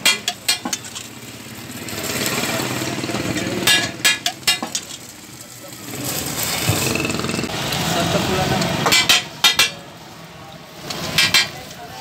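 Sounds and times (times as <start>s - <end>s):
metal spatula clanking on griddle: 0.0s - 1.0s, 3.6s - 5.0s, 8.8s - 9.8s, 11.0s - 11.6s.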